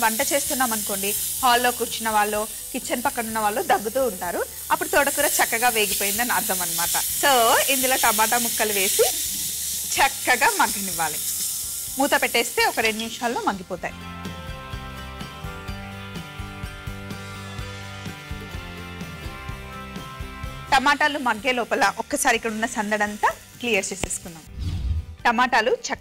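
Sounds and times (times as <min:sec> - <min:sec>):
woman talking: 0:00.0 - 0:09.2, 0:10.0 - 0:11.2, 0:12.0 - 0:13.9, 0:20.7 - 0:24.5, 0:25.3 - 0:26.0
vegetables sizzling in a pan: 0:00.0 - 0:13.9, 0:20.6 - 0:24.5
background music with held notes: 0:00.0 - 0:26.0.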